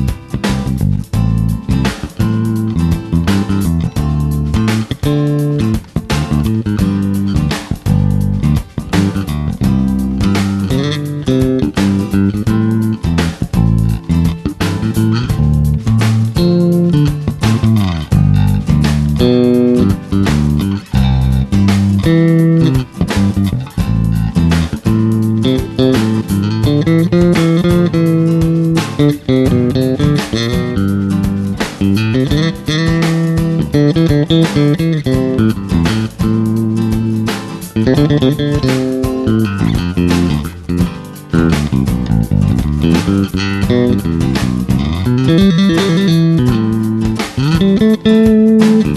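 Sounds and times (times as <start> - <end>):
backing track with steady beat: 0.0 - 48.9
electric bass guitar plucked: 0.0 - 48.9.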